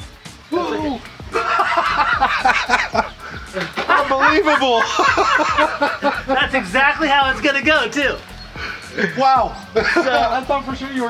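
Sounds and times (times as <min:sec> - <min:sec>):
background music with beat: 0:00.0 - 0:11.0
men exclaiming and laughing: 0:00.3 - 0:11.0.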